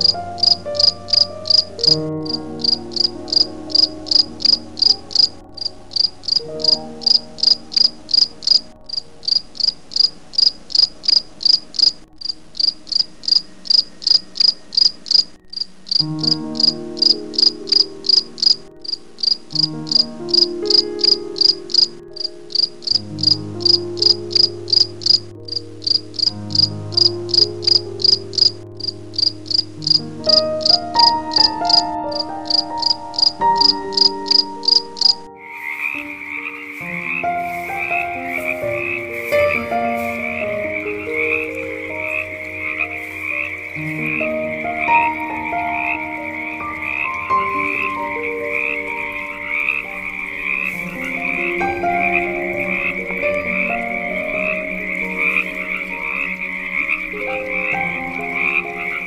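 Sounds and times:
crickets chirping: 0.0 - 59.0
low sustained tones: 0.0 - 59.0.

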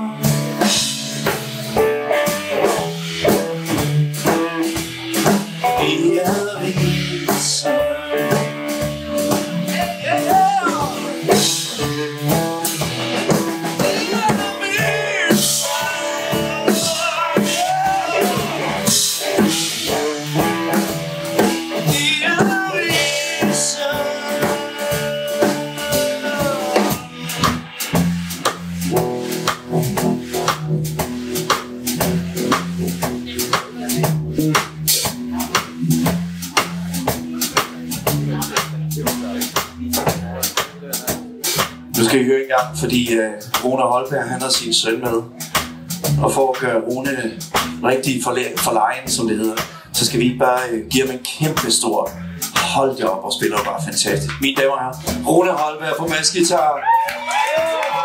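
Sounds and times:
bass guitar: 0.0 - 58.0
drum kit beat: 0.0 - 58.0.

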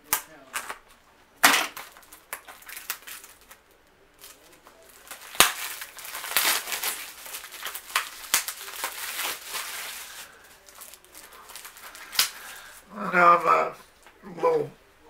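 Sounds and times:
plastic wrap crackling: 0.0 - 13.5.

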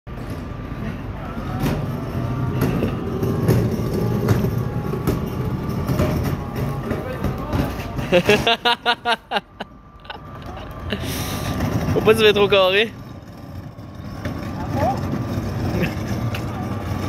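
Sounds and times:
cooler wheels rumbling on concrete: 0.1 - 17.0.

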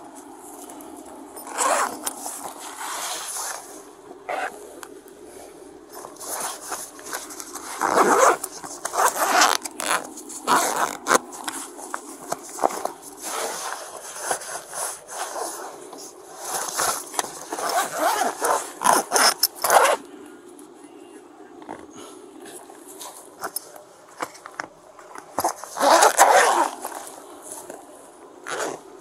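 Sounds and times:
clothing rustling in fabric bag: 0.1 - 4.7, 5.3 - 20.0, 25.3 - 29.0
zipper pulled shut: 1.4 - 2.2, 4.3 - 4.6, 6.2 - 11.2, 16.6 - 20.0, 25.4 - 27.0, 28.4 - 28.8.

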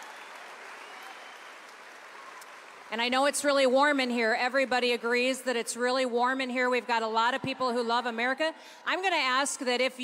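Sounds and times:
audience applauding: 0.0 - 3.4.

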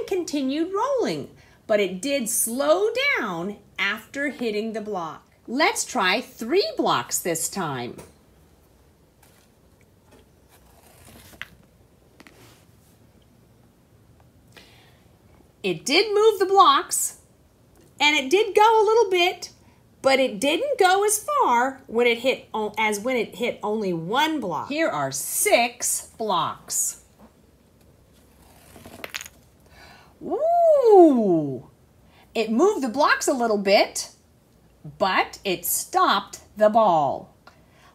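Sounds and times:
ball rolling on tiled floor: 28.3 - 29.6
wooden blocks knocking together: 28.9 - 29.4.

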